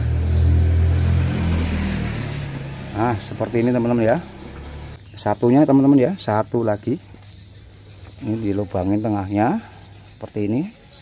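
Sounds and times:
motor engine humming: 0.0 - 5.0.

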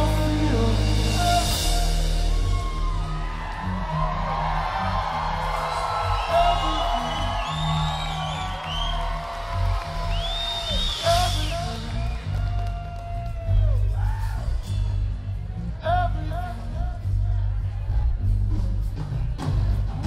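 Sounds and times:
bass and drums: 0.0 - 20.0
crowd whooping: 1.4 - 15.1.

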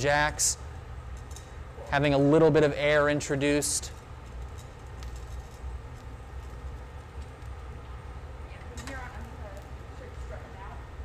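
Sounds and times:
gas burners rumbling: 0.0 - 11.0.

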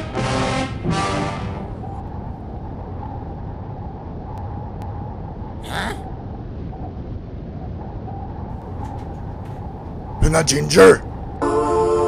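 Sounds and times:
low background rumble: 1.5 - 12.0.

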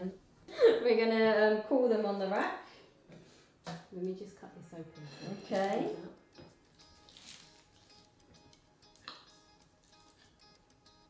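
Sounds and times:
faint background music: 0.0 - 11.0
knife crunching through pastry: 6.8 - 8.1, 8.9 - 10.4.

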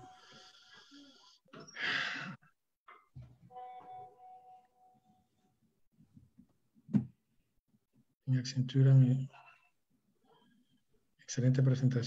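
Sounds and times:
person breathing: 0.0 - 2.4.

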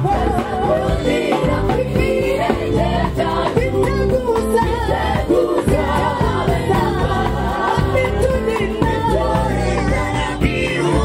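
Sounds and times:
drums: 0.0 - 11.0
electric bass guitar: 0.0 - 11.0
voices singing: 0.0 - 11.0.

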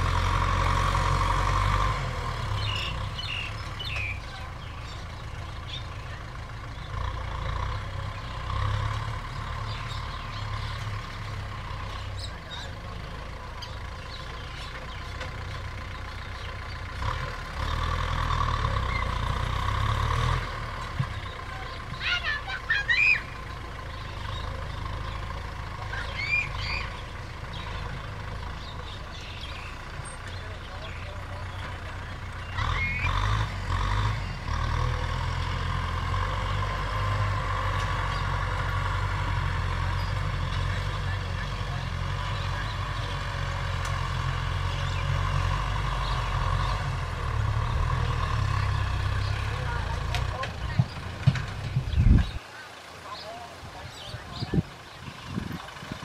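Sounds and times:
tractor diesel engine running: 0.0 - 56.0.

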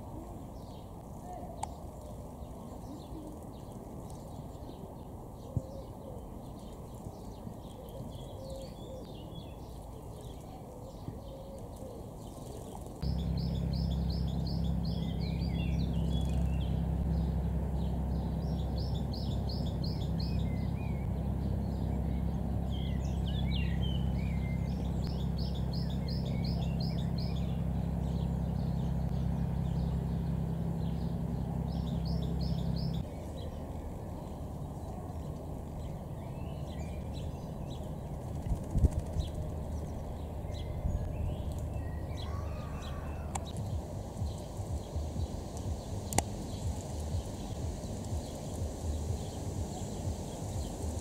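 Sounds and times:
songbirds chirping: 0.0 - 51.0
steady low hum: 11.9 - 51.0
low rushing noise: 13.0 - 51.0.

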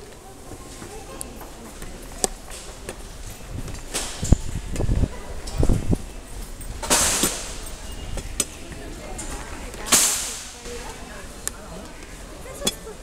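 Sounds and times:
sharp cracks: 9.8 - 10.6.

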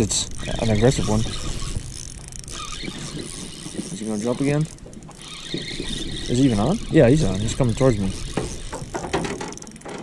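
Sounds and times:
fishing reel clicking: 0.0 - 10.0.

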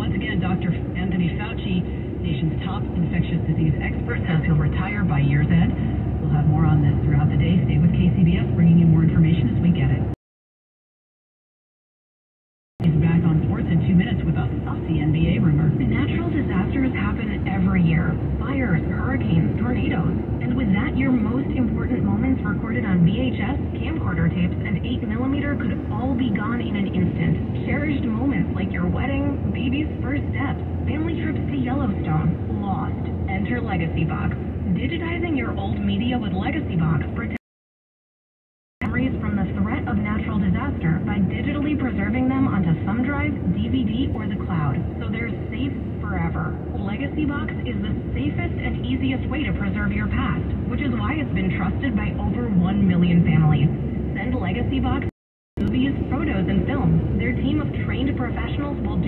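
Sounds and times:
person talking on car radio: 0.0 - 10.1, 12.8 - 37.4, 38.8 - 59.0
road and engine noise in car: 0.0 - 10.1, 12.8 - 37.4, 38.8 - 55.0, 55.6 - 59.0.

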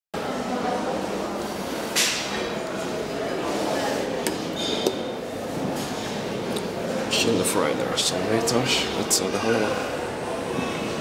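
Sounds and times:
indistinct voices in a hall: 0.2 - 11.0.

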